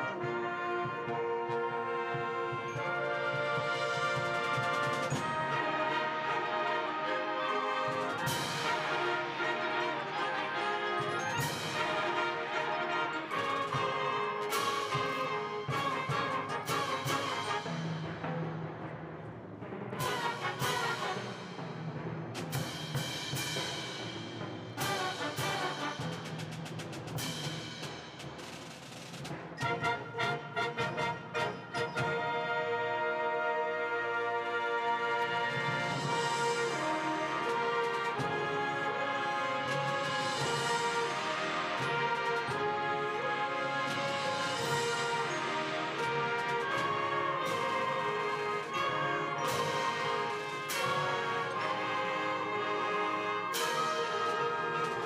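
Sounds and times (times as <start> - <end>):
timpani strikes: 0.0 - 55.0
wind band playing: 0.0 - 55.0.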